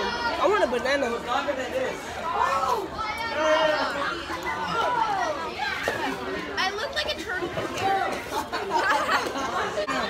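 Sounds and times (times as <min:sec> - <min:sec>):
teenagers talking: 0:00.0 - 0:10.0.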